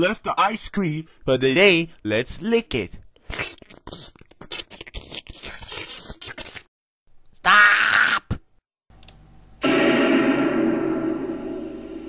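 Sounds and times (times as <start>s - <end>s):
wet licking and slurping: 3.2s - 6.7s.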